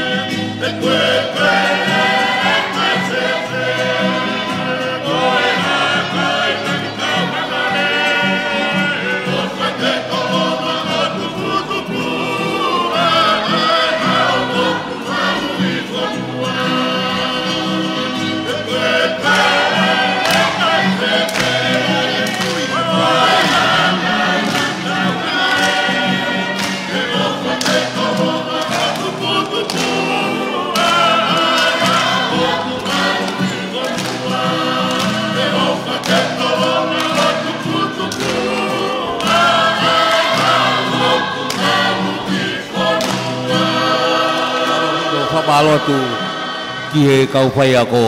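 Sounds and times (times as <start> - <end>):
choir singing in harmony: 0.0 - 48.0.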